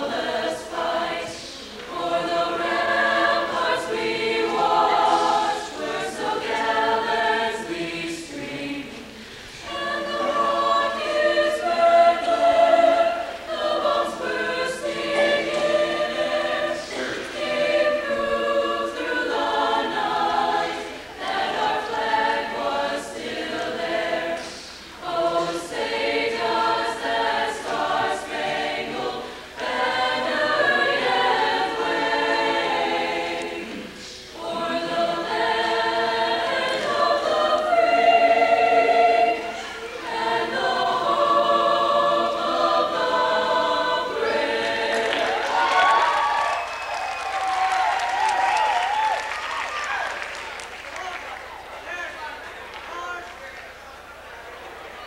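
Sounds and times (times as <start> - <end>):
choir singing: 0.0 - 50.6.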